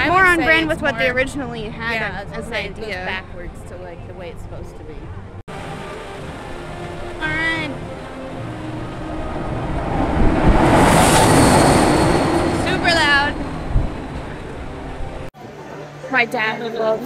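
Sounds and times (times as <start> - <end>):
ride vehicle speeding past: 5.5 - 15.3.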